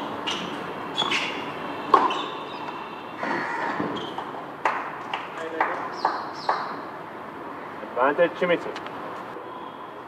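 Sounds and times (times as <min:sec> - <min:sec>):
tennis ball bouncing: 0:00.2 - 0:02.8, 0:03.8 - 0:06.8.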